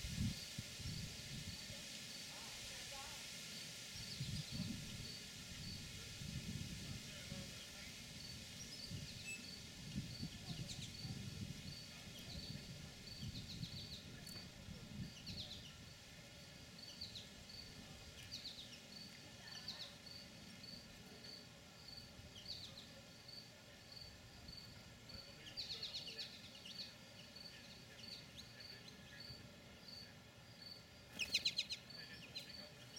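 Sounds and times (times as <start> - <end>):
insect chirping: 3.0 - 6.0, 8.2 - 14.3, 15.0 - 17.8, 18.4 - 32.9.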